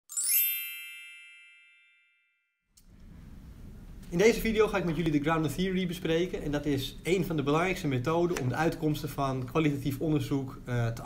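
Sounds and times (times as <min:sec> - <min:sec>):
bell-like chime: 0:00.1 - 0:02.6.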